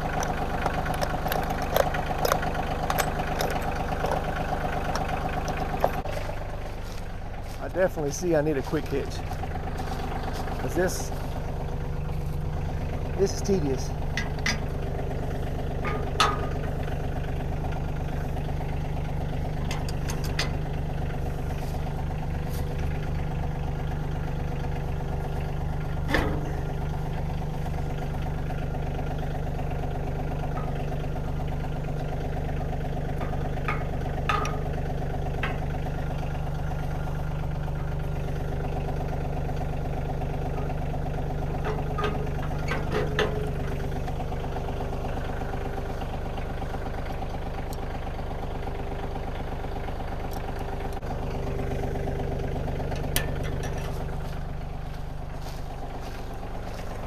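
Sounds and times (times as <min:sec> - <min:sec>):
metal clinks and clanks: 0:00.0 - 0:06.6, 0:13.3 - 0:14.9, 0:15.8 - 0:16.8, 0:19.6 - 0:20.8, 0:33.0 - 0:35.8, 0:41.6 - 0:44.8
diesel tractor idling: 0:00.0 - 0:57.0.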